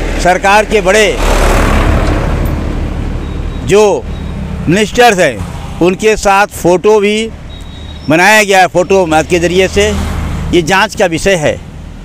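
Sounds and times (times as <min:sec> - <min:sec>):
truck passing by: 0:00.0 - 0:12.0.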